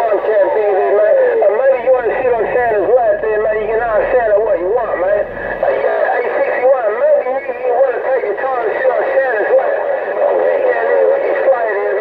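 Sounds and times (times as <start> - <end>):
steady radio hiss: 0.0 - 12.0
voices over radio speaker: 0.0 - 12.0.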